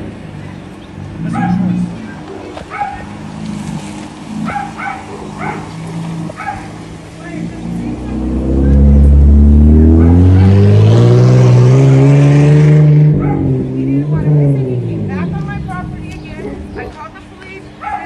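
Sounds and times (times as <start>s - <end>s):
vehicle engine accelerating hard: 0.0s - 17.9s.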